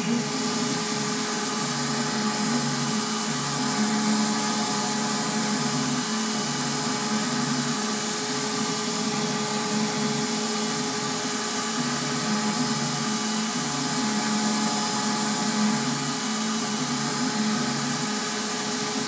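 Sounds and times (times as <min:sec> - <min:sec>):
router spindle whine: 0:00.0 - 0:19.0.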